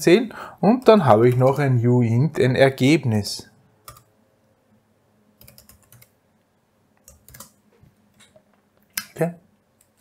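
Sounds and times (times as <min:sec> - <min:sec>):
computer keyboard typing: 0:03.8 - 0:04.1, 0:05.4 - 0:06.2, 0:07.0 - 0:07.6.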